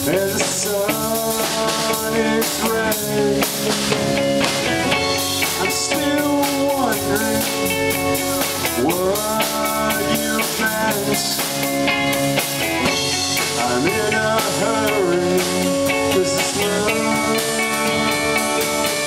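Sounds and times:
man singing: 0.0 - 4.0, 5.4 - 11.7, 12.9 - 19.0
live rock band playing: 0.0 - 19.0.

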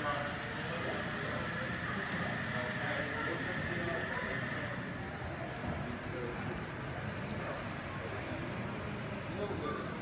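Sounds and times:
model train rolling rumble: 0.0 - 10.0.

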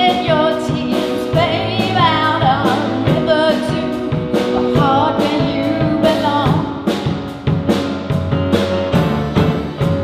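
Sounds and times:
woman singing into microphone: 0.0 - 6.8
band playing: 0.0 - 10.0
drums keeping beat: 0.0 - 10.0.

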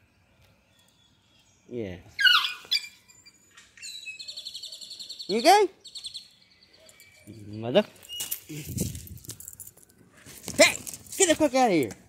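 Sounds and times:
bird trilling: 2.1 - 8.5
squeaky animal call: 2.2 - 6.1.

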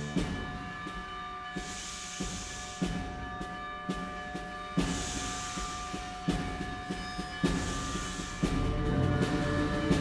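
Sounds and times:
concert band playing: 8.4 - 10.0.

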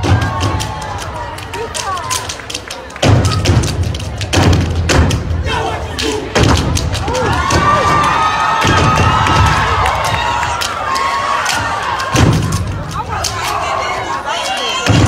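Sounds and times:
audience shouting and cheering: 0.0 - 4.1, 5.1 - 15.0
stomping and clapping: 0.0 - 5.4, 6.0 - 15.0.

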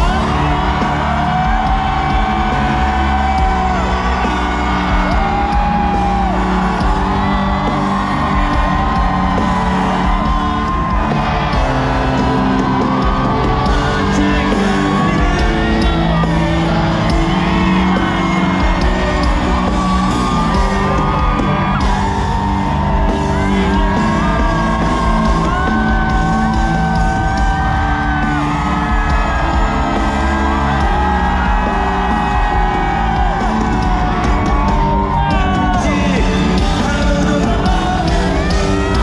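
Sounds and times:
crowd cheering and singing along: 0.0 - 39.0
live band playing: 0.0 - 39.0
singer holding long notes: 0.0 - 39.0.

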